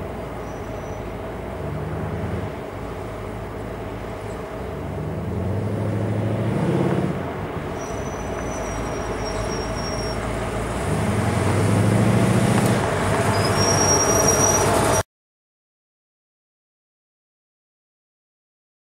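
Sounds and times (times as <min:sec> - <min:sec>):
car engine revving: 0:01.2 - 0:15.0
thin high-pitched squeal: 0:07.8 - 0:10.3, 0:13.2 - 0:15.0.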